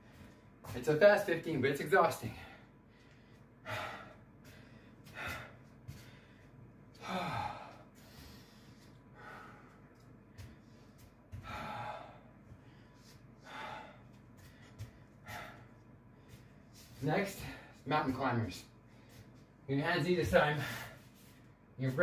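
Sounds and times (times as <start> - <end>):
man breathing hard: 2.3 - 17.8, 20.4 - 21.6.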